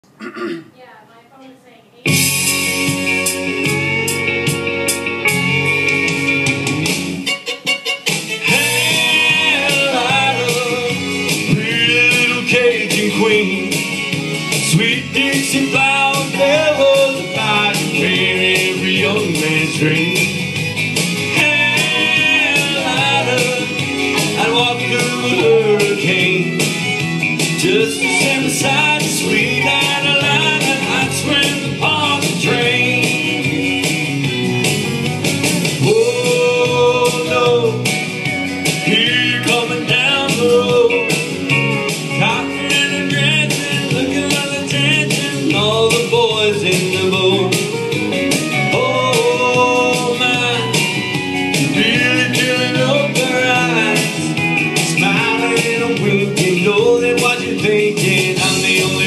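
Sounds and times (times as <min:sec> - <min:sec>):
guitar: 0:00.8 - 0:59.0
country band playing: 0:02.0 - 0:59.0
lead melody line: 0:02.0 - 0:59.0.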